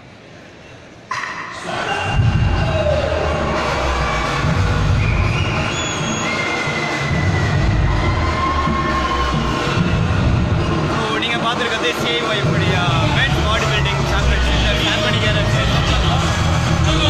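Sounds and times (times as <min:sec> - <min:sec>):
crowd cheering and shouting: 0:01.1 - 0:17.0
loud bass-heavy amplified music: 0:01.6 - 0:17.0.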